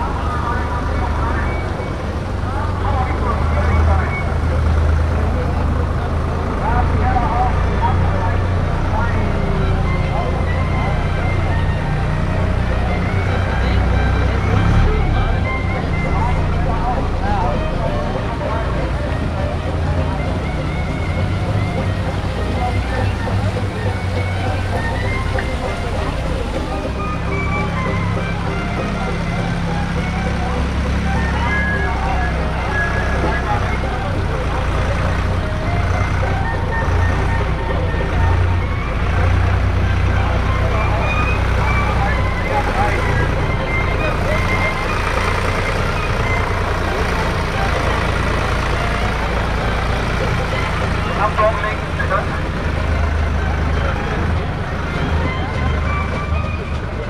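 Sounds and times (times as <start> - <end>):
crowd talking: 0.0 - 57.0
small tractor engine running: 0.0 - 57.0.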